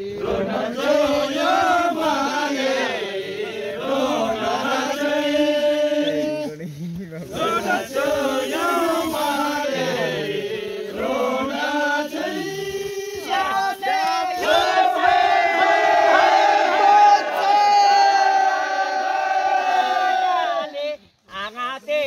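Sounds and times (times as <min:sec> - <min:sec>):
men chanting and singing: 0:00.0 - 0:21.2.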